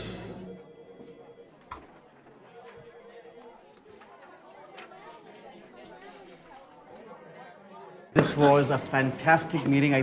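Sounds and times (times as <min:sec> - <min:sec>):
faint chatter of voices: 0:00.6 - 0:10.0.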